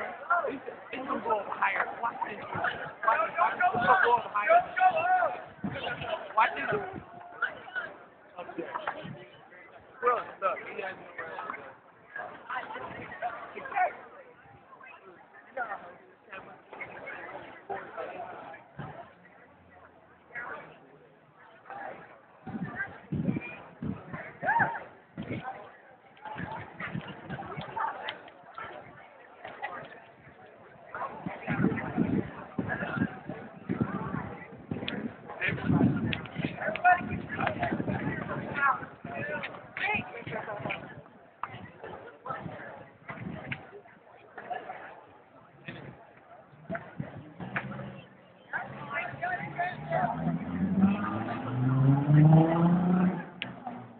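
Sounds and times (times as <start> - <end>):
indistinct voices talking: 0.0 - 53.9
vehicle engine rising in pitch: 49.8 - 53.9.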